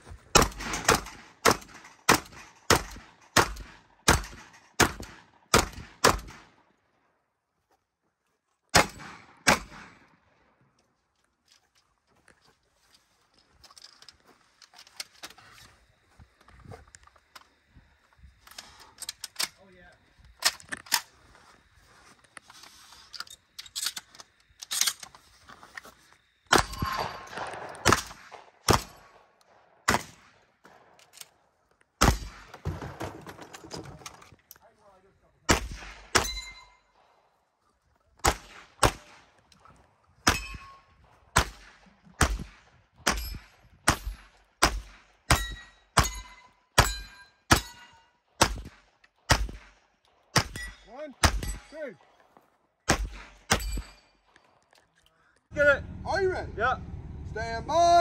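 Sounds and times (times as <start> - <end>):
gunshots: 0.3 - 6.6, 8.7 - 10.1, 26.5 - 31.0, 32.0 - 33.4, 35.4 - 36.6, 38.2 - 39.4, 41.3 - 46.2, 46.8 - 51.8, 52.8 - 54.0
steel targets ringing: 36.1 - 37.0, 40.2 - 40.9, 45.3 - 48.2.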